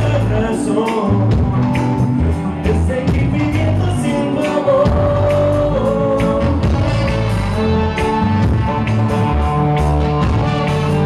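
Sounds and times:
drum kit: 0.0s - 11.0s
electric guitars: 0.0s - 11.0s
reggae band playing live: 0.0s - 11.0s.

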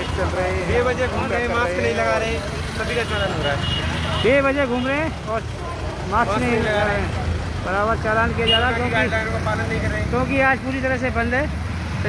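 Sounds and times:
man talking: 0.0s - 11.6s.

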